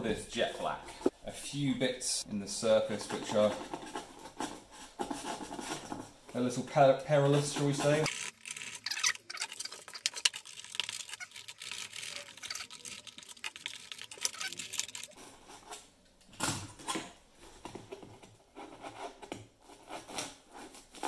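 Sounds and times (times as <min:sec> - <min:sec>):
craft knife cutting foam: 0:17.6 - 0:21.0.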